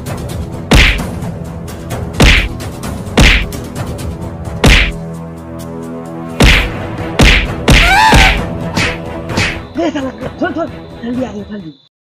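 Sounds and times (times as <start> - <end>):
punch sound effects: 0.7 - 1.1, 2.2 - 2.6, 3.2 - 3.5, 4.6 - 5.0, 6.4 - 9.6.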